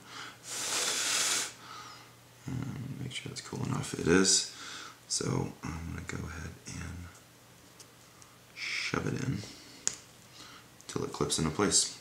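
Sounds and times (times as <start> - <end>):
breath blown out: 0.4 - 1.6.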